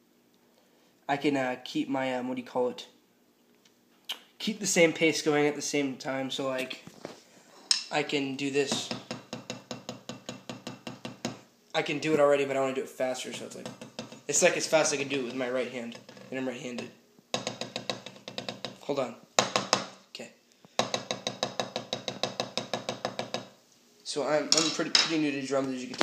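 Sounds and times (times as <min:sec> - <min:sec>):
drumsticks tapping practice pad: 0:08.7 - 0:11.4, 0:16.7 - 0:18.8, 0:19.4 - 0:20.0, 0:20.8 - 0:23.6.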